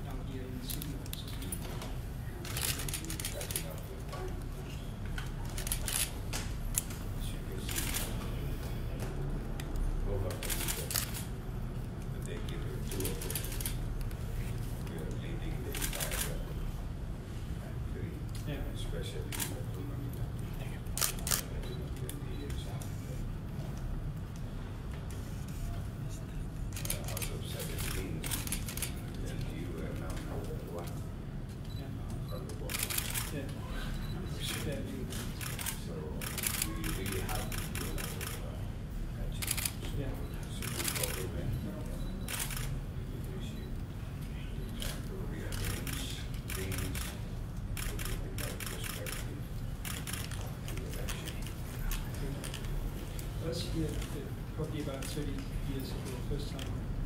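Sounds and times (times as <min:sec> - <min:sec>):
low murmur of voices: 0:00.0 - 0:57.0
low room hum: 0:00.0 - 0:57.0
camera shutters clicking rapidly: 0:02.4 - 0:03.8, 0:10.4 - 0:11.3, 0:21.0 - 0:21.5, 0:26.7 - 0:29.0, 0:34.4 - 0:38.4, 0:39.4 - 0:39.8, 0:42.3 - 0:42.8, 0:44.8 - 0:47.2, 0:47.8 - 0:52.7.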